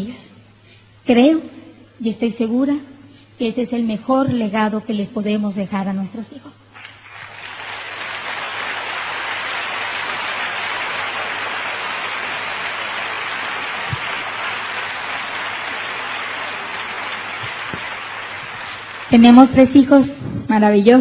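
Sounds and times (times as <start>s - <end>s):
faint electrical hum: 0.0s - 21.0s
audience applauding: 6.8s - 19.6s.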